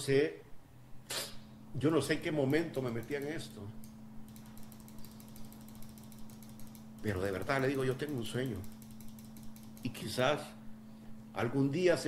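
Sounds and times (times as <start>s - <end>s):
faint irregular clicks: 2.4s - 10.1s.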